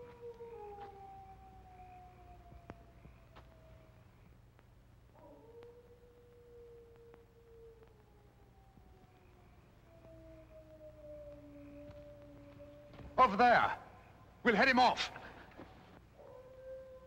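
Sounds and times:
faint dog howling: 0:00.0 - 0:04.2, 0:05.1 - 0:14.4, 0:16.2 - 0:17.0.

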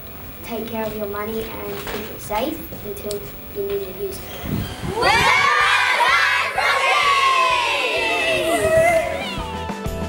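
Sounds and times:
children cheering and shouting: 0:04.7 - 0:09.6.

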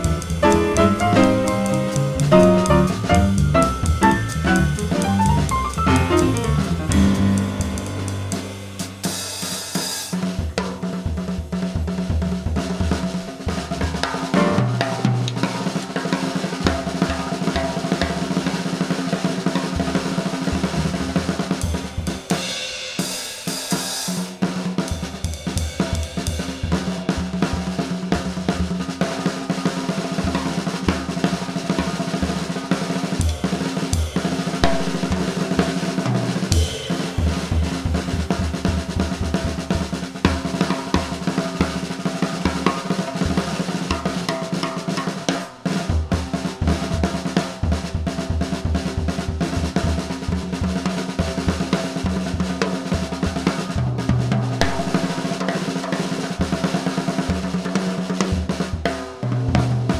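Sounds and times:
upright bass low notes: 0:00.0 - 0:08.7
jazz drum solo: 0:00.0 - 0:59.9.

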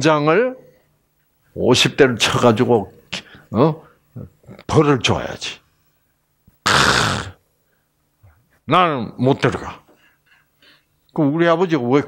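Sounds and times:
man grunting: 0:06.7 - 0:07.4.

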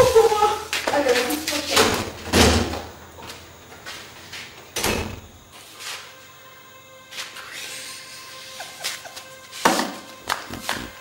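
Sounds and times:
door banging: 0:01.7 - 0:02.9, 0:04.8 - 0:05.4.

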